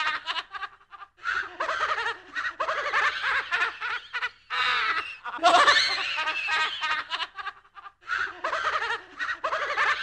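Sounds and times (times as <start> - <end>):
high-pitched spooky laughter: 0.0 - 10.0.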